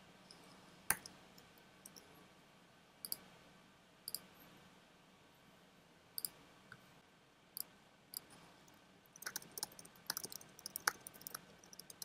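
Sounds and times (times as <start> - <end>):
computer mouse clicks: 3.0 - 3.2, 9.2 - 12.0.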